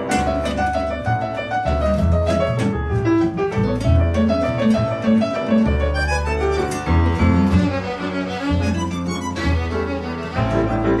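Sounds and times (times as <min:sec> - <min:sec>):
double bass notes: 0:00.0 - 0:11.0
tango quintet playing: 0:00.0 - 0:11.0.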